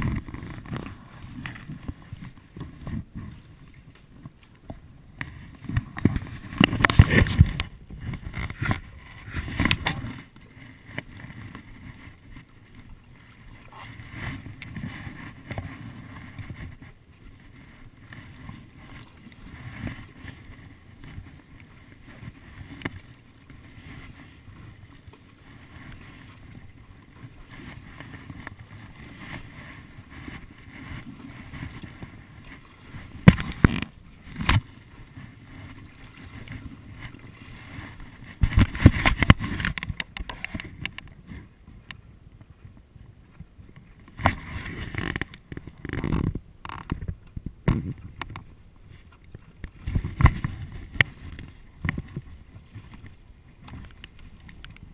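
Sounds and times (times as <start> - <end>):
paddle strokes through water: 0.0 - 54.9.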